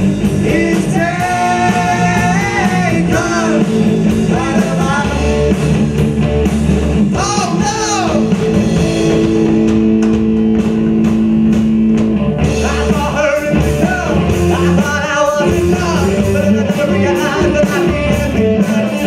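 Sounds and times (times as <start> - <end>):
rock band playing live: 0.0 - 19.0
person singing: 0.3 - 5.3, 7.2 - 8.4, 12.5 - 19.0.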